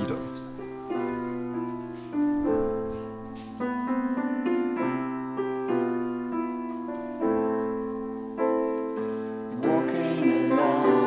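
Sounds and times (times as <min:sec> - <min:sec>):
solo piano playing: 0:00.0 - 0:11.0.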